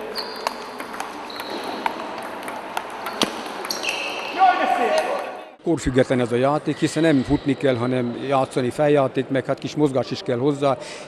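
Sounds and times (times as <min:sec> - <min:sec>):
table tennis ball clicking: 0:00.3 - 0:03.8.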